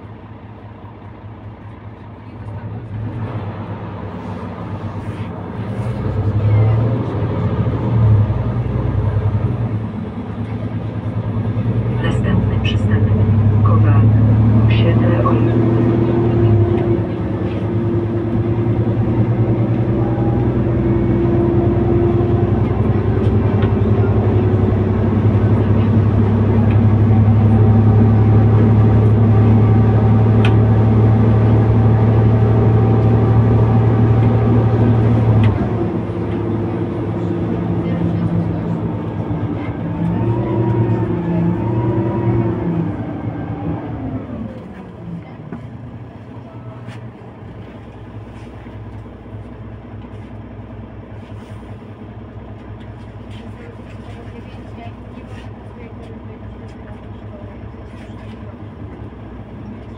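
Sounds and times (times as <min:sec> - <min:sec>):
bus engine drone: 0:00.0 - 0:59.9.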